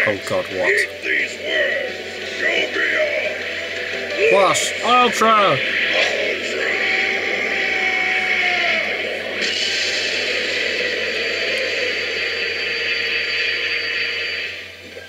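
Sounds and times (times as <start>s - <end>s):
cartoon energy blast rushing: 5.5s - 14.6s.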